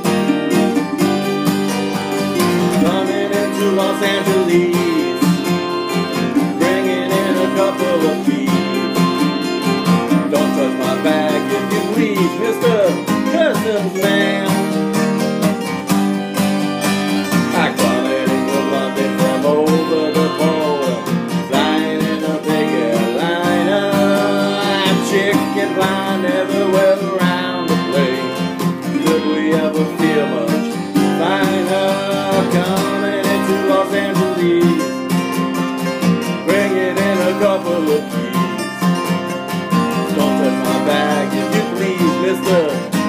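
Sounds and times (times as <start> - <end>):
acoustic guitars strumming: 0.0 - 43.0
bending lead guitar melody: 0.0 - 43.0.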